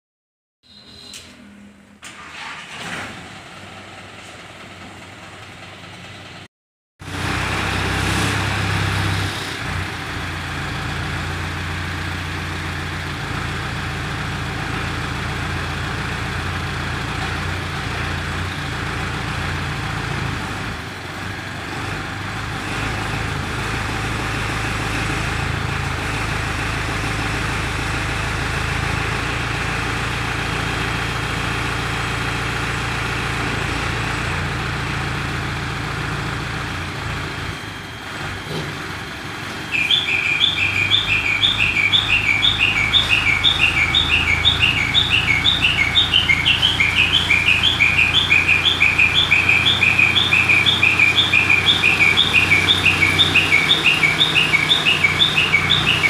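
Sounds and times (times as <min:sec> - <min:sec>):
crane diesel engine running: 0:00.7 - 0:56.0
electronic chirping alarm: 0:39.7 - 0:56.0.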